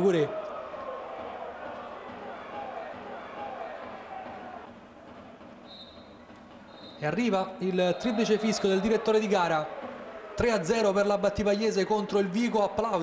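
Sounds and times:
referee's whistle blasts: 5.6 - 9.0.

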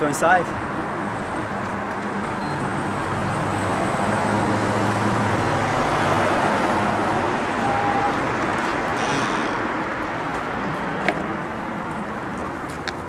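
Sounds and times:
road traffic noise: 0.0 - 13.0.

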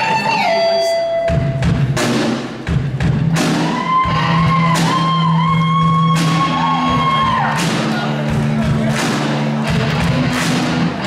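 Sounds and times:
drum kit crashing cymbals: 1.2 - 11.0.

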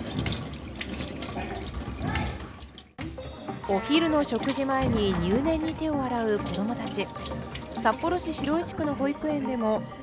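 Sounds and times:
tap water splashing in sink: 0.0 - 8.8.

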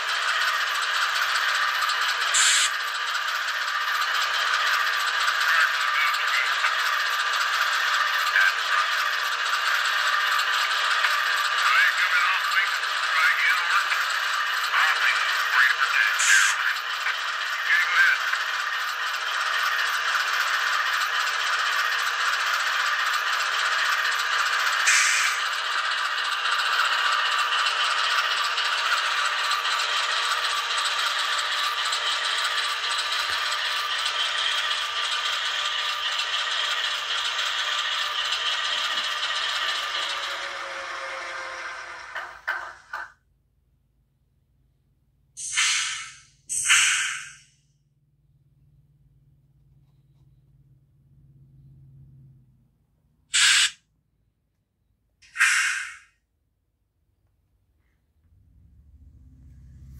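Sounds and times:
diesel engine sound through small speakers: 0.0 - 59.9.

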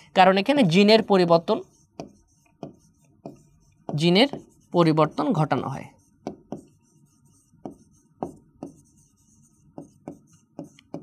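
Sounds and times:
pen tapping on glass screen: 1.8 - 4.6, 6.2 - 6.8, 7.4 - 11.0.

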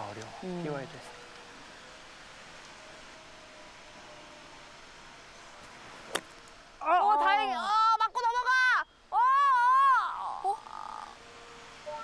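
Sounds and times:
woman exclaiming oh: 6.8 - 11.2.

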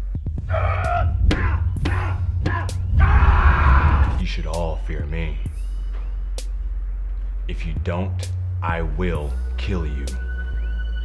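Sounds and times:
low droning music score: 0.0 - 11.0
man screaming in rage: 0.5 - 4.2.

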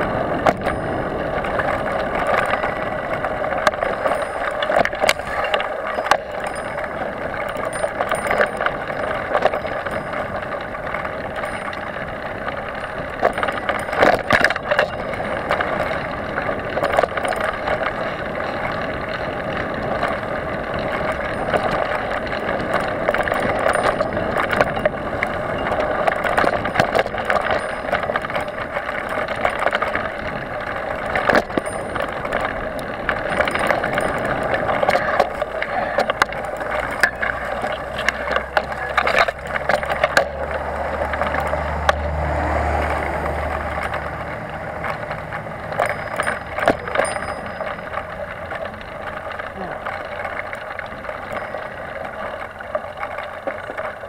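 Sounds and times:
bike rattling over bumps: 0.0 - 54.0
bike tyres on dirt trail: 0.0 - 54.0.

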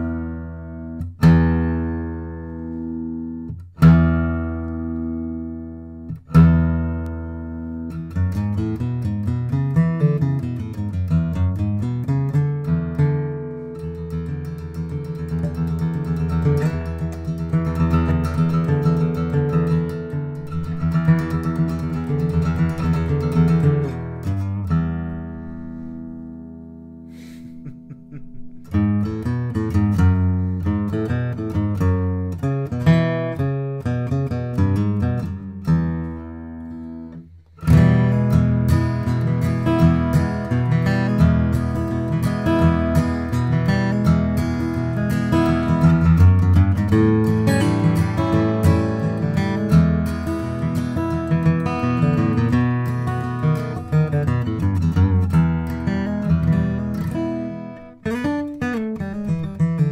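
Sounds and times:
acoustic guitar strummed and picked: 0.0 - 59.9.

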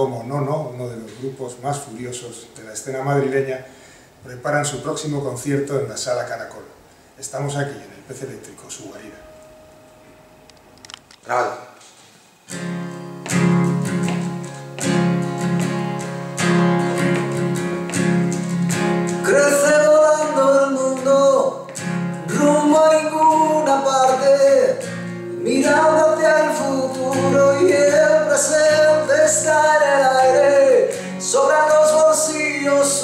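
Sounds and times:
strummed guitar chords: 12.5 - 33.0
person singing: 19.2 - 24.8, 25.4 - 33.0.

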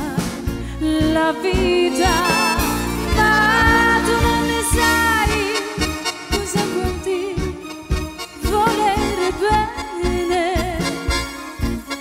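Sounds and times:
accordion melody: 1.3 - 12.0.

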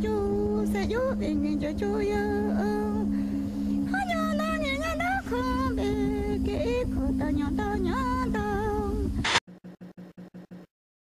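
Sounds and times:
woman singing a slow lament: 0.0 - 9.2
steady low hum: 0.0 - 10.7.

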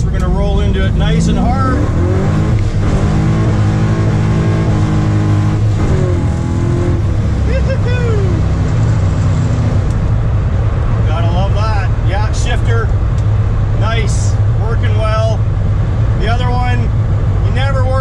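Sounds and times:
car engine accelerating: 0.0 - 18.0.

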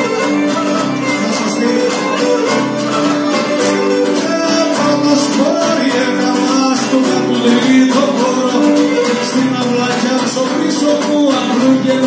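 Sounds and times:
acoustic guitar: 0.0 - 12.0
strummed lutes: 0.0 - 12.0.

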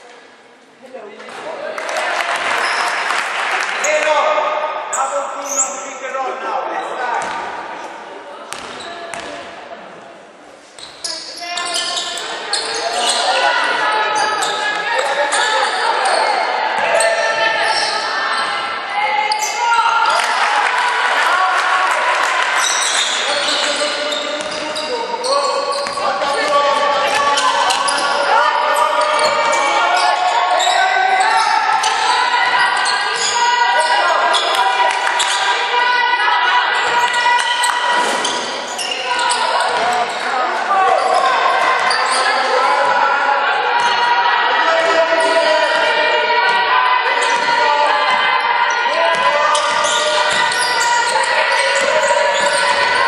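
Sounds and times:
basketball bouncing on wooden court: 8.5 - 9.3, 24.4 - 24.8, 49.1 - 53.0
players calling out: 10.8 - 53.0.

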